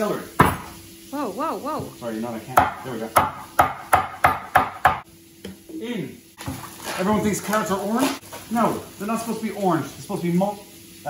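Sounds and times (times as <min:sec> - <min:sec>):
knife chopping on wooden board: 0:02.6 - 0:05.0.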